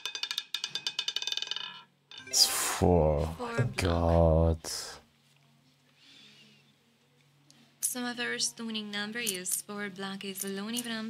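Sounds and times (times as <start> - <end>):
roulette ball clattering: 0.0 - 2.3.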